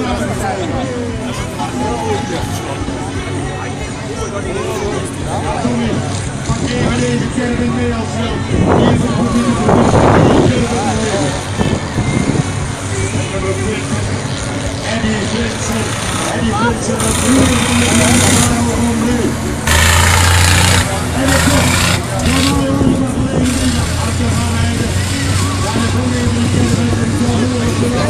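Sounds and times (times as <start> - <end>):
crowd voices: 0.0 - 28.0
race engine revving: 0.0 - 28.0.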